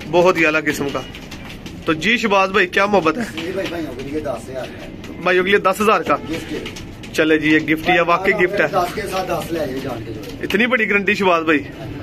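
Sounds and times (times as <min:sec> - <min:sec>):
man talking: 0:00.0 - 0:01.1, 0:01.9 - 0:12.0
pigeons cooing: 0:07.7 - 0:10.6.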